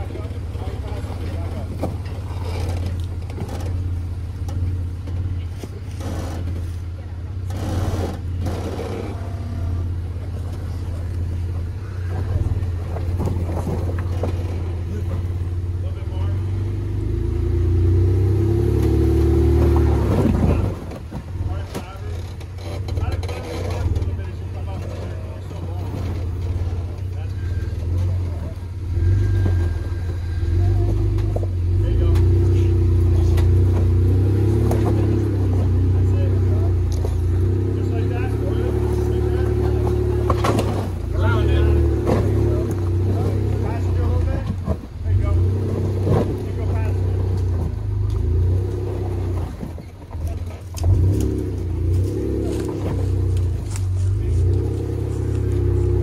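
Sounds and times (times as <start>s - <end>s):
engine working under load: 0.0s - 56.0s.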